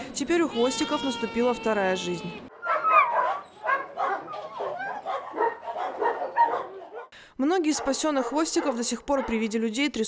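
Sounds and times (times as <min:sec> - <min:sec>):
dogs barking and yelping: 0:02.5 - 0:07.2, 0:07.8 - 0:09.5.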